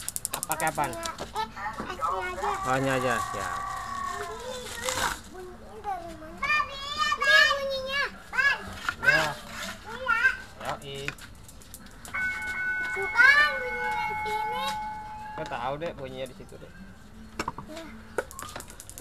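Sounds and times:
children chattering: 0.4 - 10.4.

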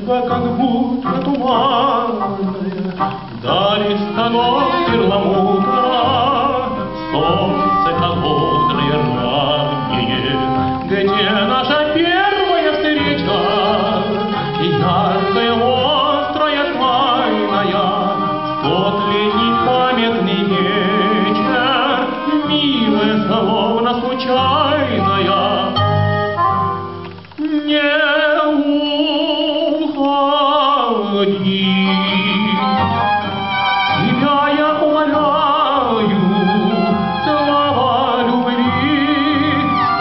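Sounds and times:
violin vibrato melody: 0.0 - 27.1, 30.8 - 40.0
acoustic ensemble playing slow song: 0.0 - 40.0.

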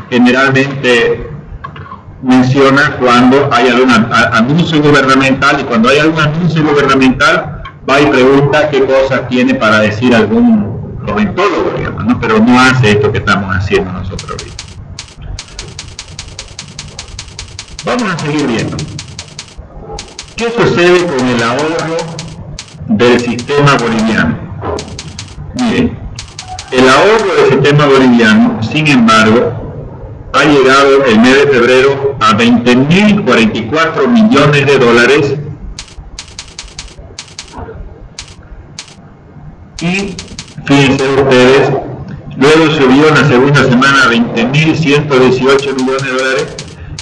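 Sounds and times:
rapid evenly spaced clicking: 14.2 - 27.5, 35.8 - 39.0, 39.8 - 41.3, 45.5 - 47.0.

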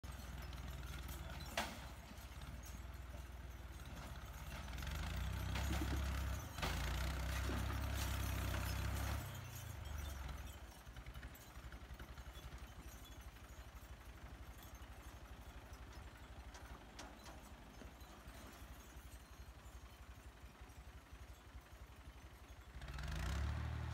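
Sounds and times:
tractor diesel engine: 0.0 - 23.9.

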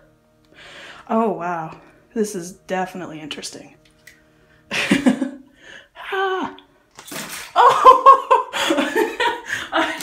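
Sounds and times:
person laughing hard: 4.7 - 5.5, 7.4 - 10.0.

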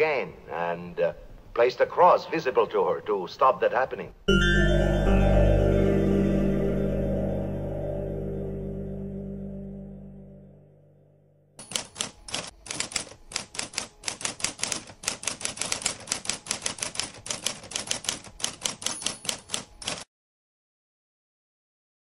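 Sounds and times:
rapid typewriter keystrokes: 11.6 - 20.1.

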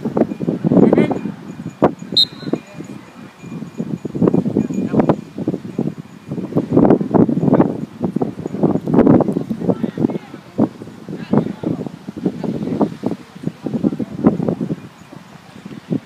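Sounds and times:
wind buffeting microphone: 0.0 - 16.0
brief high chirp: 2.2 - 2.6.

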